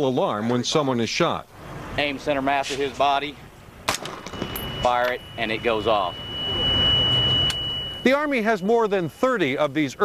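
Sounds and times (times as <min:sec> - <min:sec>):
high alarm beep: 0:04.2 - 0:10.0.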